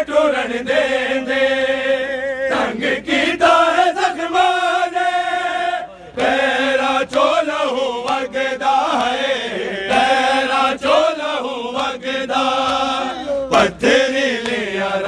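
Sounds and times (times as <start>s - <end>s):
men chanting in unison: 0.0s - 15.0s
hands slapping chests: 7.0s - 10.1s, 12.6s - 13.0s, 14.3s - 14.7s.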